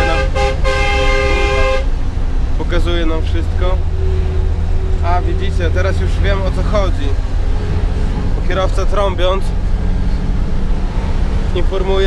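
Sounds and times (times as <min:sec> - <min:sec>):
minibus horn honking: 0:00.0 - 0:02.2, 0:03.8 - 0:06.2
low engine rumble: 0:00.0 - 0:12.0.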